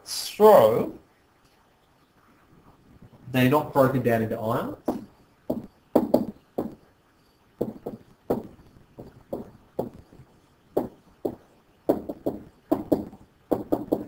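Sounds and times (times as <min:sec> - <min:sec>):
stylus tapping on writing surface: 0:04.9 - 0:06.8, 0:07.6 - 0:10.0, 0:10.8 - 0:14.0.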